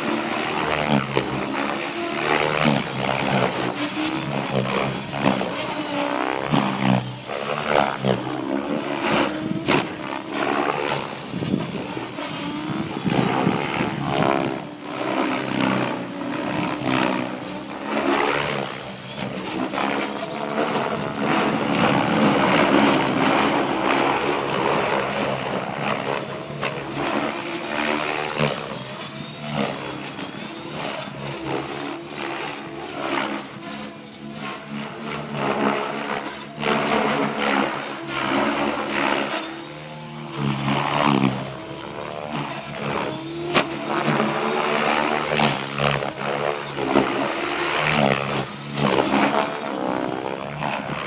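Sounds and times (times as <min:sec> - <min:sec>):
rc helicopter motor whining: 0:00.0 - 0:51.0.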